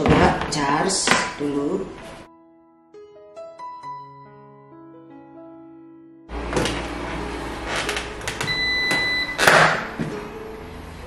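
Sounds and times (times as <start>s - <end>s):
soft background music: 0.0s - 11.0s
air fryer electronic beep: 8.3s - 9.8s.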